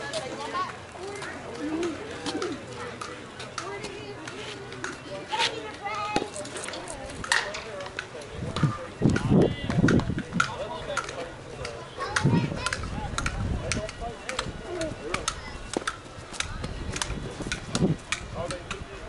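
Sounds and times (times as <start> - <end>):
people talking and calling out: 0.0 - 19.0.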